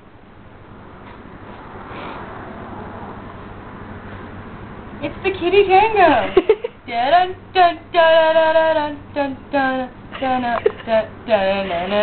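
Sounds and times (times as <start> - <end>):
woman singing wordless tune: 5.0 - 12.0.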